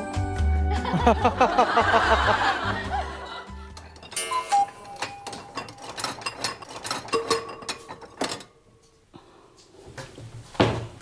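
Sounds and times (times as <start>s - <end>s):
light background music: 0.0s - 7.0s
woman laughing loudly: 0.7s - 3.8s
tinkling music cue: 3.7s - 5.8s.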